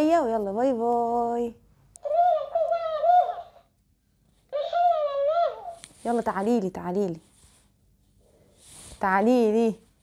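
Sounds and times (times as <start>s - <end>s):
toy playing squeaky voice: 2.0s - 3.6s, 4.5s - 5.8s.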